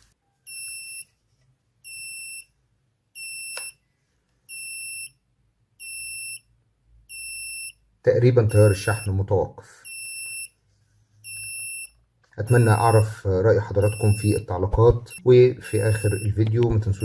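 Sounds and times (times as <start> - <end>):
high-pitched buzzer beeps: 3.2 - 3.8, 4.5 - 5.2, 5.8 - 6.5, 7.1 - 7.8, 9.9 - 10.6, 11.2 - 13.0, 15.0 - 17.0.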